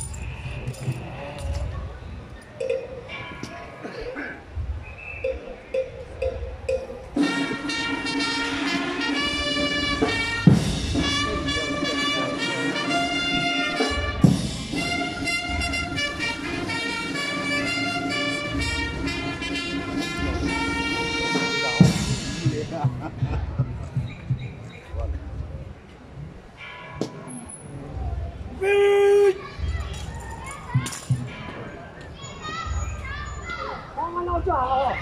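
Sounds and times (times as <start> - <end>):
crowd talking: 0.0 - 35.0
children's voices: 1.0 - 4.6, 29.0 - 34.2
brass band chords: 6.7 - 23.6.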